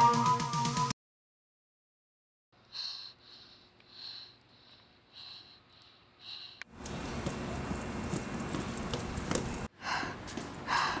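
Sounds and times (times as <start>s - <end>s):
person panting: 2.6s - 7.2s, 9.6s - 11.0s.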